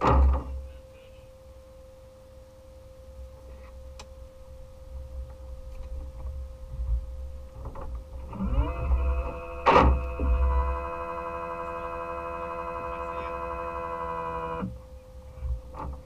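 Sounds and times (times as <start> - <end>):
steady background hum: 0.0 - 16.0
small electric motor whine: 3.2 - 16.0.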